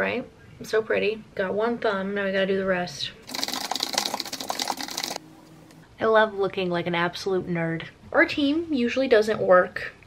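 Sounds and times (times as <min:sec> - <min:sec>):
typing on computer keyboard: 0:03.3 - 0:05.2.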